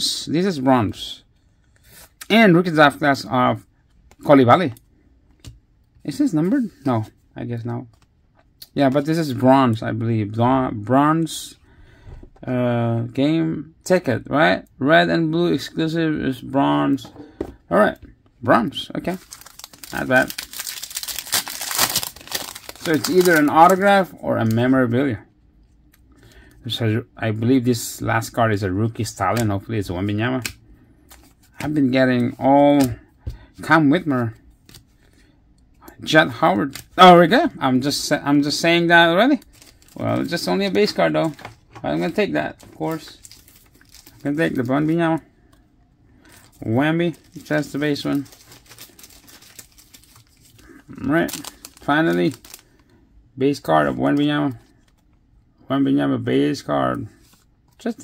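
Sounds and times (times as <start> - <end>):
trading cards rustling: 18.9 - 24.7, 30.4 - 33.0, 36.1 - 45.6, 46.2 - 52.9
foil wrapper tearing and crinkling: 19.1 - 23.8, 39.3 - 40.6, 43.0 - 44.9, 47.3 - 52.8.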